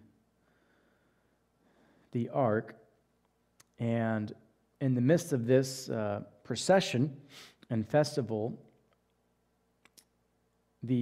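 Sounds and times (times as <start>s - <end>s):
faint steady hum: 0.0s - 11.0s
man speaking: 2.1s - 2.9s, 3.6s - 8.6s.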